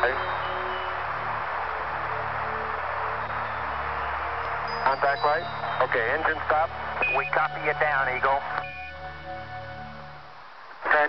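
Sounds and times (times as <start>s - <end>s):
radio static hiss: 0.0s - 9.0s, 10.2s - 11.0s
low musical drone: 0.0s - 10.4s.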